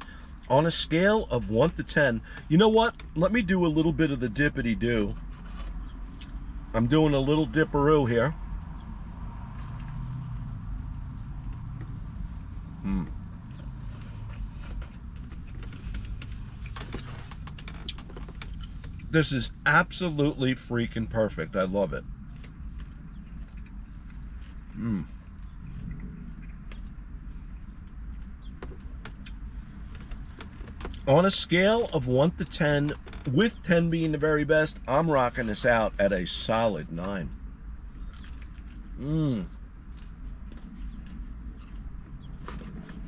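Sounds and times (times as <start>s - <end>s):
low steady rumble: 0.0s - 43.0s
faint chewing clicks: 22.3s - 27.0s, 38.0s - 38.9s.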